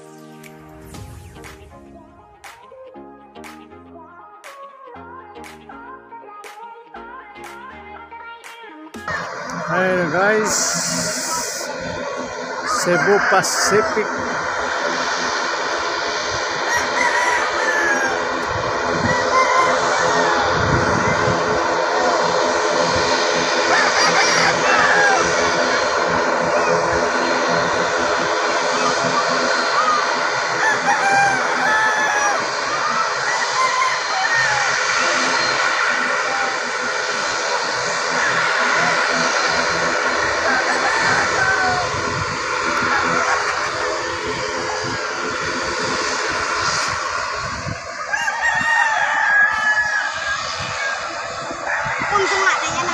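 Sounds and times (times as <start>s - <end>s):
distant turboprop airliner humming: 9.0s - 52.9s
rooster crowing: 9.1s - 20.8s, 23.6s - 26.7s, 29.8s - 36.8s, 37.6s - 44.9s, 47.9s - 52.8s.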